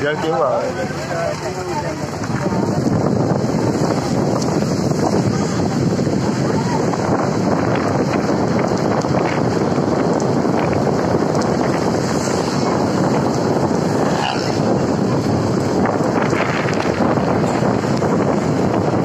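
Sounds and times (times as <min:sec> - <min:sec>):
car driving on wet road: 0:00.0 - 0:19.0
wind on microphone: 0:00.0 - 0:19.0.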